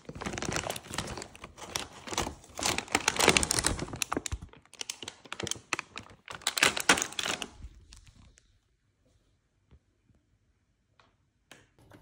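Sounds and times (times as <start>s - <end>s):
plastic bag rustling: 0.0s - 8.5s.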